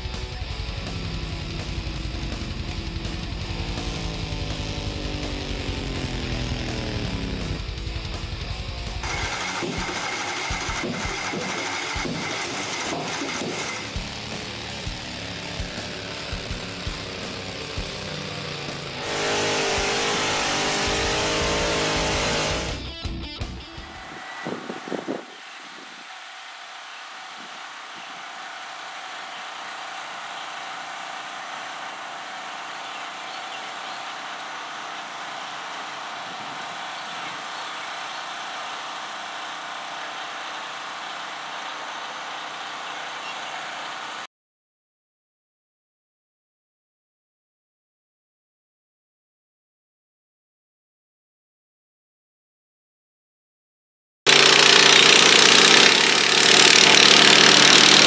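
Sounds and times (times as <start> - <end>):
tractor engines under load: 0.0 - 22.8, 54.3 - 58.0
engines idling: 0.0 - 22.9, 30.3 - 44.2
music: 0.0 - 24.1.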